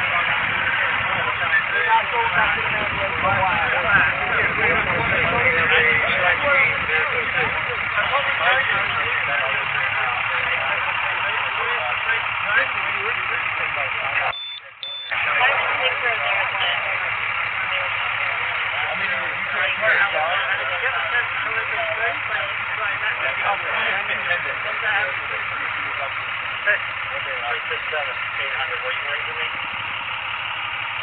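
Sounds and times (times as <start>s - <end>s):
overlapping voices chattering: 0.0s - 31.0s.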